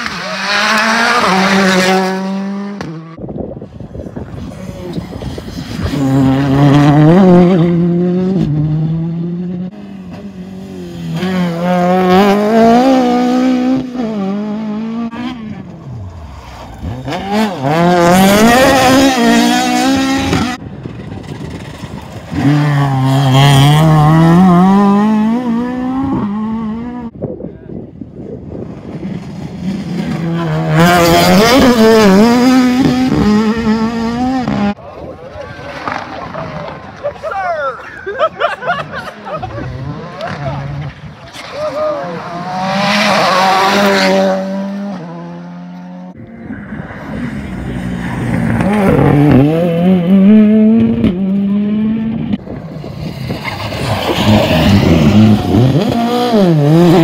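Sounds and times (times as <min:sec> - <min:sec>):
rally car engines revving: 0:00.0 - 0:27.2, 0:28.0 - 0:57.0.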